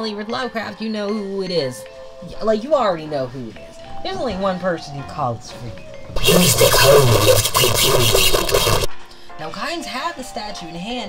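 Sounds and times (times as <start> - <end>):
voice: 4.1 - 8.9
harsh distorted noise burst: 6.2 - 8.9.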